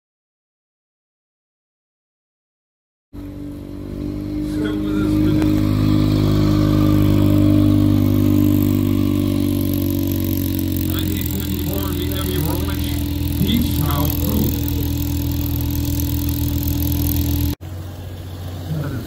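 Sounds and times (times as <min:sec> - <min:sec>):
car engine driving past: 0:03.2 - 0:19.0.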